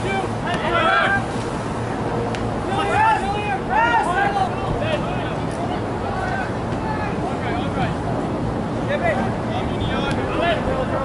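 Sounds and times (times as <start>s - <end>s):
distant voices shouting: 0.0s - 11.0s.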